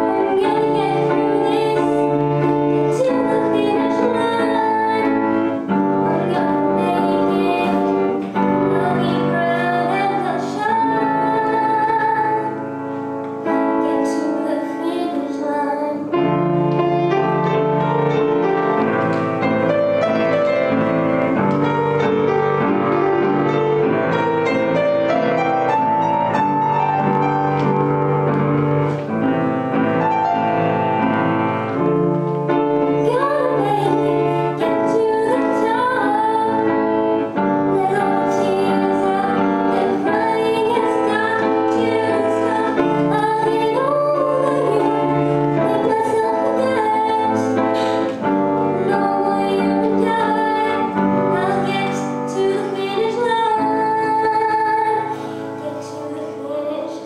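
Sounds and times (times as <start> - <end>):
woman singing: 0.0 - 12.7, 13.5 - 16.5, 32.9 - 57.0
piano accompaniment: 0.0 - 57.0.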